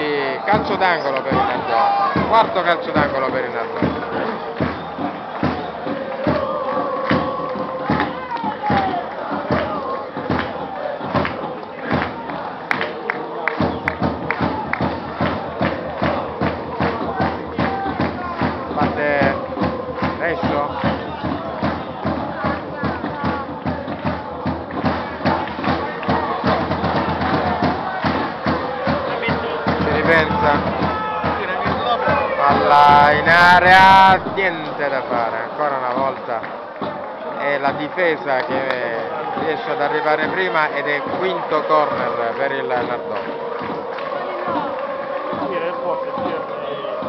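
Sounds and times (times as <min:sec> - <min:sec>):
crowd chanting and singing: 0:00.0 - 0:47.0
repeated drum beat: 0:00.0 - 0:47.0.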